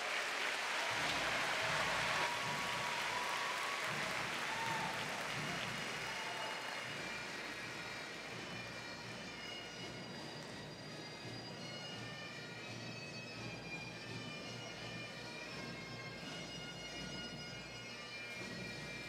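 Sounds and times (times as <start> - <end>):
crowd applauding: 0.0 - 10.7.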